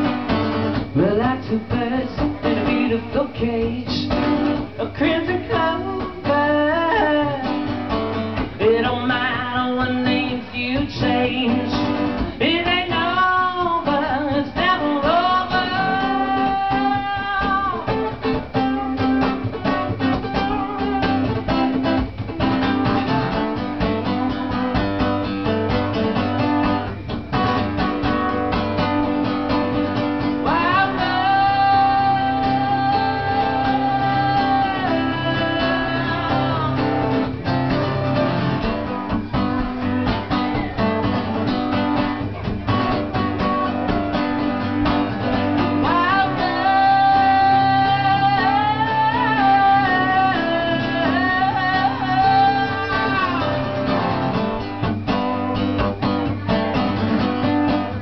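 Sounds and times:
acoustic guitar strummed: 0.0s - 58.0s
man singing: 0.8s - 22.0s, 30.2s - 42.1s, 43.2s - 54.6s.

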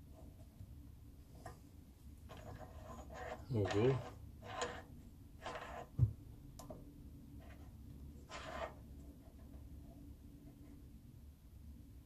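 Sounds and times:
soft metal scrapes: 1.4s - 6.0s, 7.4s - 9.9s.

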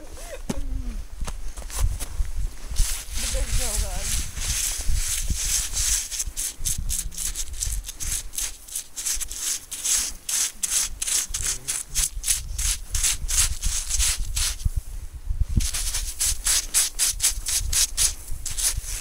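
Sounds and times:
hand scraping through snow: 1.6s - 19.0s.

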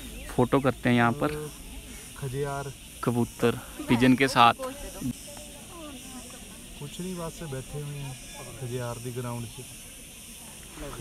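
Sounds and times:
faint voices: 0.0s - 11.0s
steady hiss: 0.0s - 11.0s.

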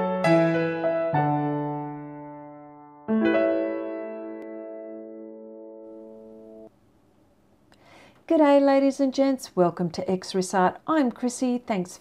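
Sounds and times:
held keyboard chord: 0.0s - 6.7s.

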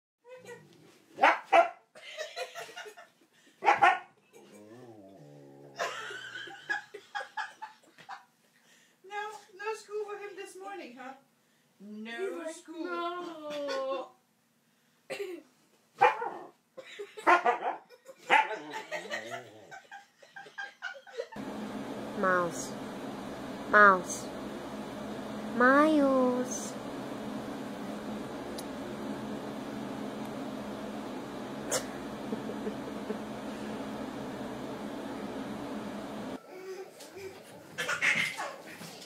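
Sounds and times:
dog barking: 1.2s - 1.9s, 3.6s - 4.1s, 16.0s - 16.5s, 17.2s - 18.6s.

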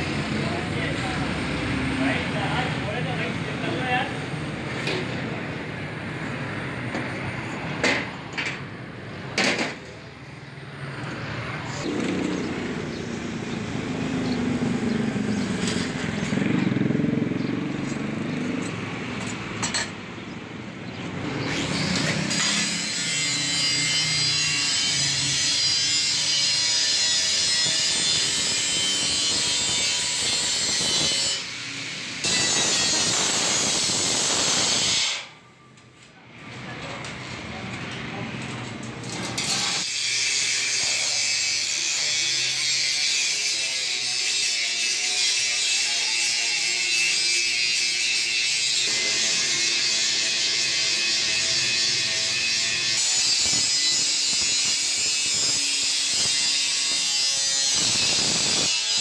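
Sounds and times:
angle grinder grinding steel: 11.6s - 19.4s, 21.3s - 35.3s, 39.2s - 59.0s.

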